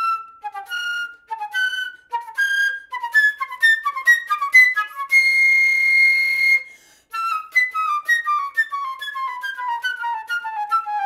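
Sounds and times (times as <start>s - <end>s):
flute holding high note: 0.0s - 11.0s.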